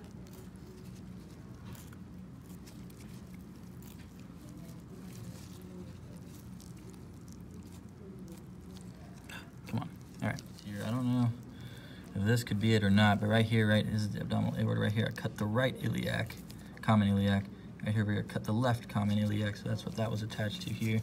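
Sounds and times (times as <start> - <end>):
wet handling sounds: 0.0 - 17.2
low steady hum: 0.0 - 21.0.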